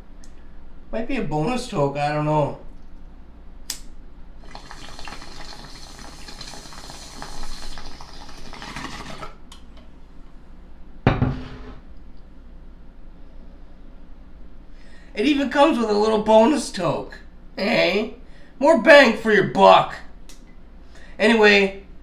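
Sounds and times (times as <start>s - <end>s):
bong water bubbling: 4.4s - 9.3s.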